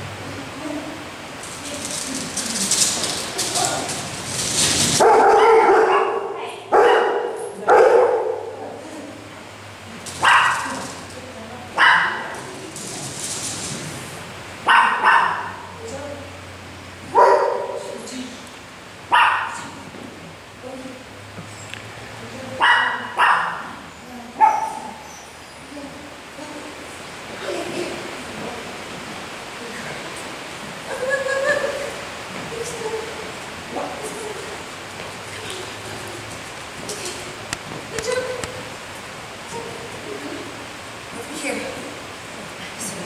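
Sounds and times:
small dog barking: 5.0 - 8.6, 10.2 - 10.8, 11.8 - 12.4, 14.7 - 15.7, 17.1 - 18.0, 19.1 - 19.7, 22.6 - 23.8, 24.4 - 25.0.

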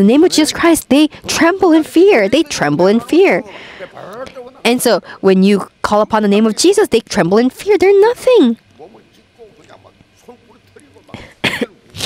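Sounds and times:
harsh cough: 11.2 - 12.0.

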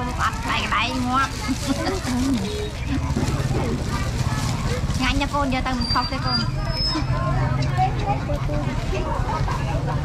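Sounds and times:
market voices: 0.0 - 10.0
vehicle engine running: 0.5 - 10.0.

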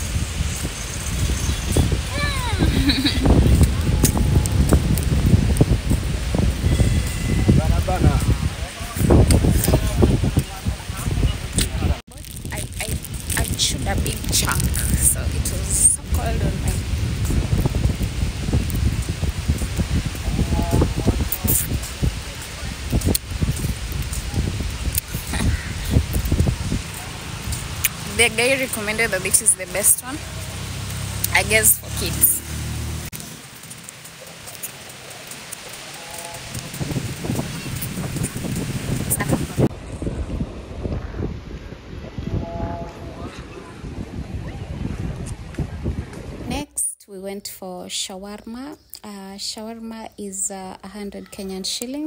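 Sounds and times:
wind buffeting microphone: 0.0 - 33.2, 33.8 - 46.8.

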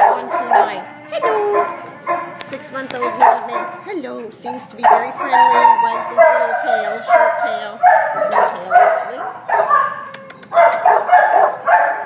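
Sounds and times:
dogs barking: 0.0 - 12.0.

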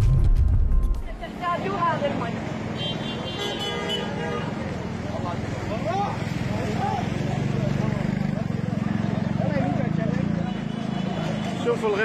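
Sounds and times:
vehicle horn: 2.8 - 4.6.

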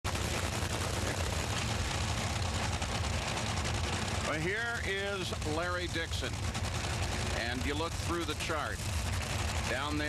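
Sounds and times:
dragster engine idling crackle: 0.0 - 10.0.

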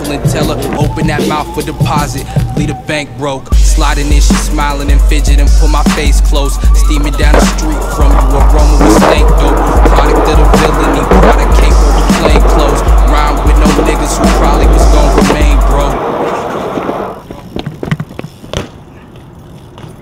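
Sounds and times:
hip-hop music with heavy bass: 0.0 - 17.3
bike rolling on concrete: 0.0 - 20.0.

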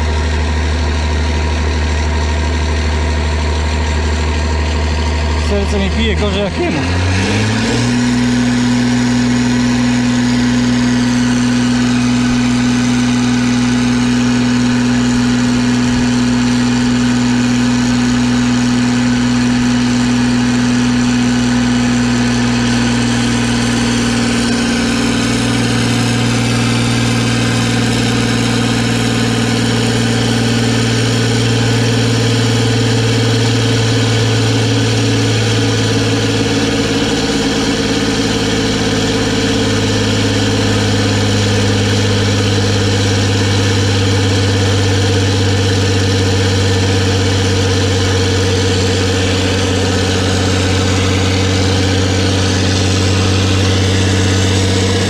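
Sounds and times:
diesel tractor engine running: 0.0 - 55.0.

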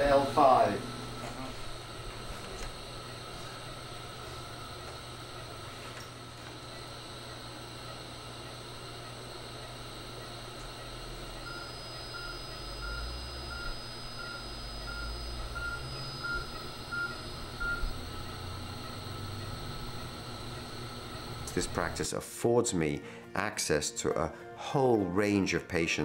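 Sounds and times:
low machine rumble: 0.0 - 22.0
thin steady high tone: 0.0 - 22.1
steady equipment hum: 0.0 - 26.0.

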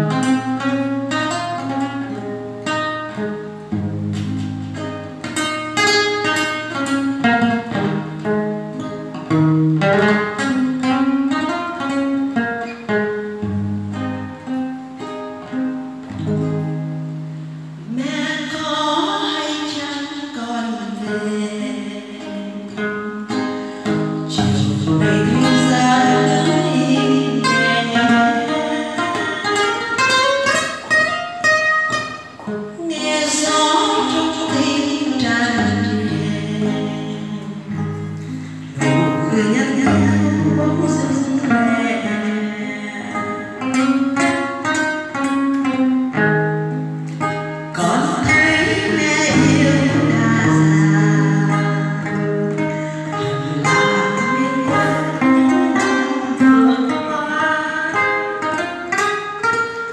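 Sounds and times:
acoustic guitar playing: 0.0 - 59.9
woman singing: 17.9 - 31.0, 32.7 - 44.8, 47.7 - 59.0.

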